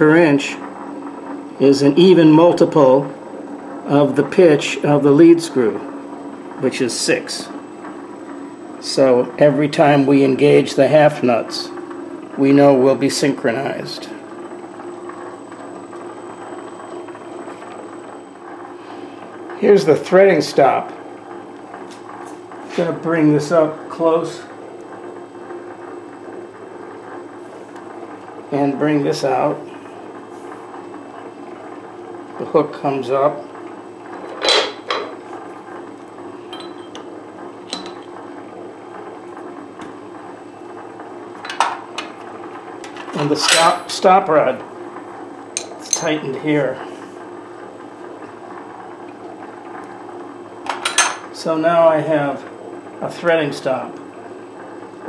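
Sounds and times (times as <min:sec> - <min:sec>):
lathe motor and gearing hum: 0:00.0 - 0:55.0.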